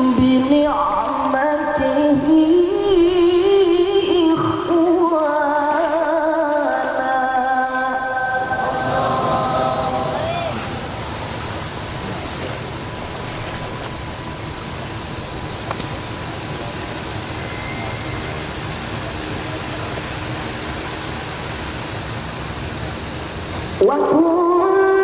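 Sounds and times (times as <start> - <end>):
steady background noise: 0.0 - 25.0
person chanting: 6.6 - 10.8.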